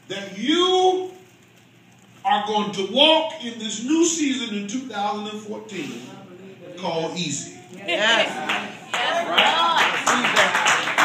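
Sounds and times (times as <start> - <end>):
congregation clapping: 8.2 - 11.0.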